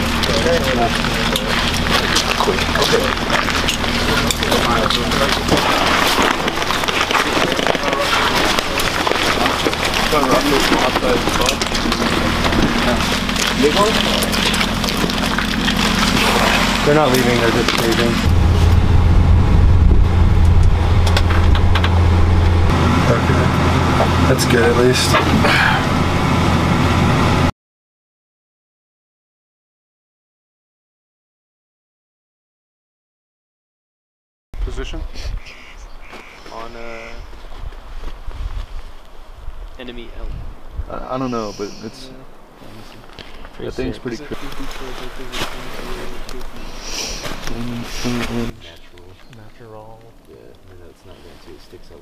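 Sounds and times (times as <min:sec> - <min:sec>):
gear clicks and rustles: 0:00.0 - 0:18.4, 0:42.6 - 0:52.0
steady low hum: 0:00.0 - 0:27.5
vehicle engine idling: 0:00.0 - 0:27.5
people talking indistinctly: 0:00.1 - 0:18.3, 0:24.2 - 0:25.8, 0:39.8 - 0:52.0.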